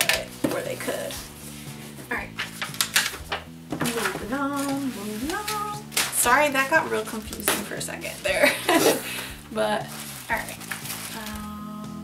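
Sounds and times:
packaging clicks and rustles: 2.4s - 11.5s
woman's wordless voice sounds: 3.8s - 7.5s.

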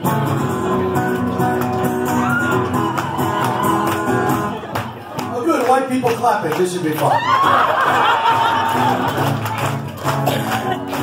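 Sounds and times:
acoustic-electric guitar chords: 0.0s - 5.3s, 7.4s - 11.0s
audience voices and shouts: 0.0s - 11.0s.

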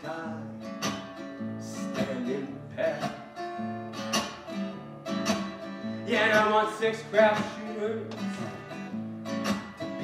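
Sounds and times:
person singing blues: 0.0s - 4.1s, 5.3s - 10.0s
acoustic guitar picked and strummed: 0.0s - 10.0s.

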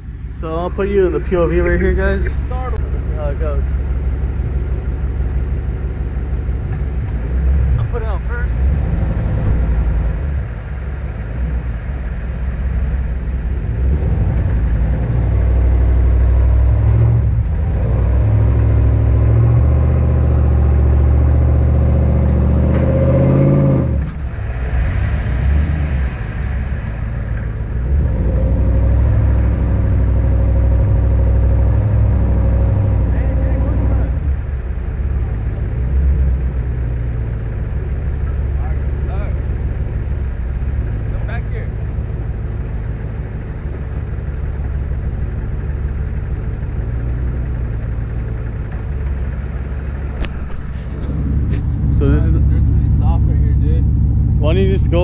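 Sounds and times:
pickup truck engine revving hard: 13.7s - 26.8s.

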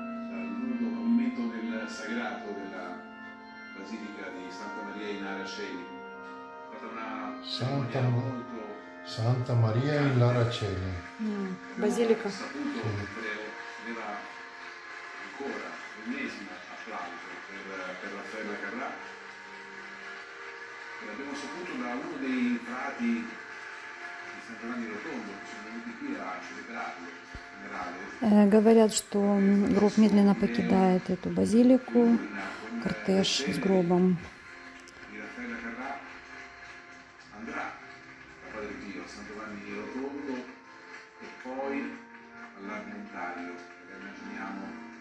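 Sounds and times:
music with long held notes: 0.0s - 45.0s
voice: 6.8s - 14.2s, 15.4s - 19.0s, 24.4s - 34.3s.

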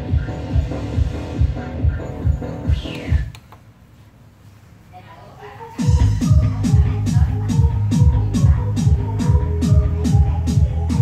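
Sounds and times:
deep bass beat: 0.0s - 3.3s, 5.8s - 11.0s.

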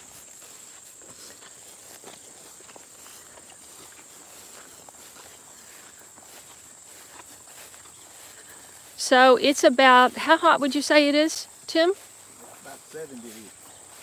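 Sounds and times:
footsteps through long grass: 0.0s - 14.0s
insect chorus: 0.0s - 14.0s.

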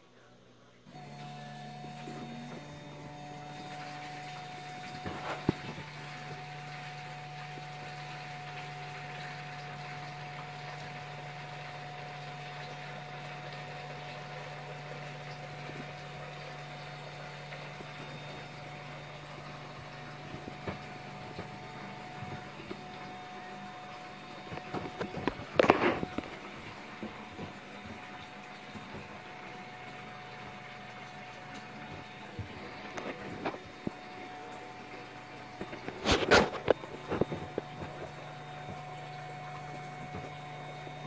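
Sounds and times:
electric pump humming: 0.0s - 41.0s.

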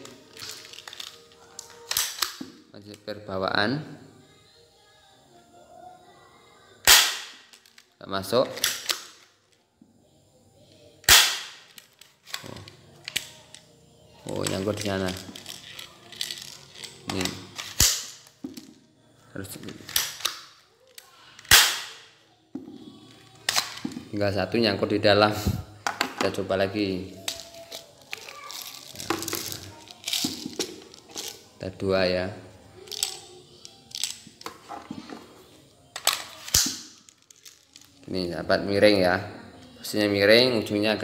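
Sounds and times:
plastic pellets rattling in bottle: 0.2s - 2.0s, 14.4s - 18.4s, 27.2s - 31.5s
toy pistol clicks: 0.4s - 2.5s, 6.8s - 7.9s, 8.6s - 9.3s, 11.0s - 13.7s, 14.4s - 18.4s, 19.8s - 22.1s, 23.5s - 23.8s, 36.0s - 37.9s
pistol shot sharp crack: 6.9s - 7.4s, 11.1s - 11.6s, 21.5s - 22.0s.

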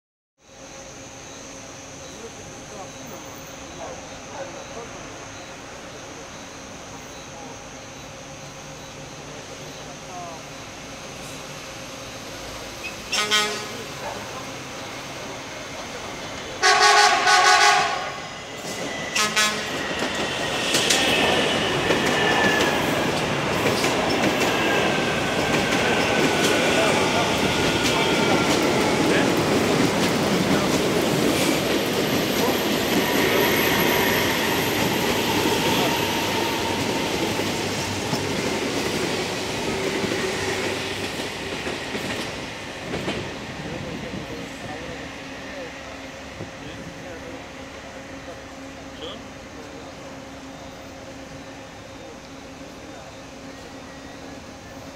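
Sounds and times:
electric train whine: 0.4s - 54.9s
train wheels rumbling on rail: 0.6s - 54.9s
train horn: 13.1s - 14.0s, 16.6s - 18.3s, 19.1s - 19.9s.

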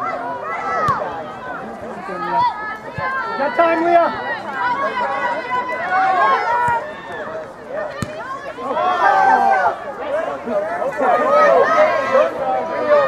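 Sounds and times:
many voices shouting: 0.0s - 13.0s.

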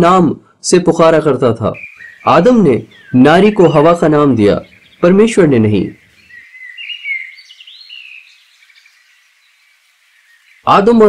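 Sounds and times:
birds chirping: 1.0s - 11.0s.

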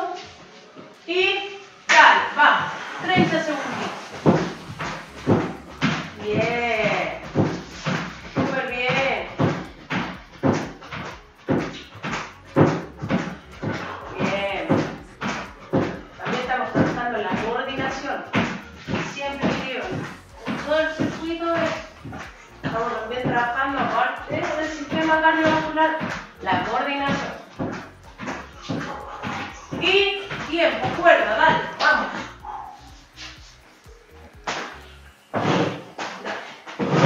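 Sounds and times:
person speaking: 1.1s - 7.3s, 13.7s - 18.3s, 18.9s - 32.4s
feet thumping on step platform: 3.0s - 33.4s, 34.3s - 37.0s.

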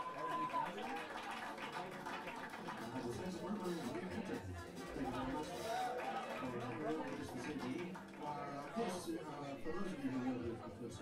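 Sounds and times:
music: 0.0s - 11.0s
people talking: 0.0s - 11.0s.

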